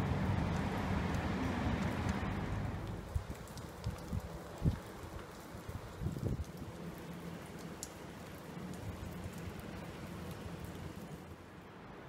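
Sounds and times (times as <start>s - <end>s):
water drips ticking: 0.0s - 11.3s
rain on wet paving: 0.0s - 12.0s.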